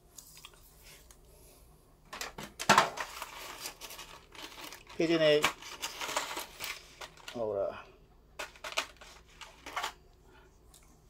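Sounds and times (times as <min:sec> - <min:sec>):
plastic toy parts rustling: 0:02.1 - 0:07.7, 0:08.4 - 0:10.0.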